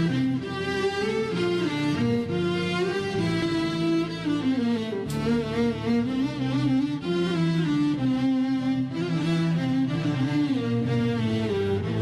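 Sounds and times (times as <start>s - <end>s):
bowed strings ensemble playing: 0.0s - 12.0s.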